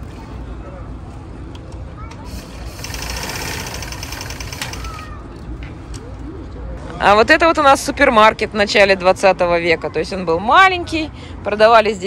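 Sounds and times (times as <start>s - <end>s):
sewing machine stitching: 2.3s - 5.0s.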